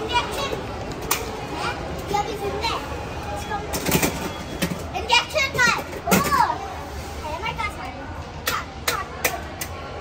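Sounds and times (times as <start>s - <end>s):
high-pitched child speech: 0.0s - 0.8s, 1.4s - 3.7s, 4.9s - 9.4s
children talking and calling out: 0.0s - 10.0s.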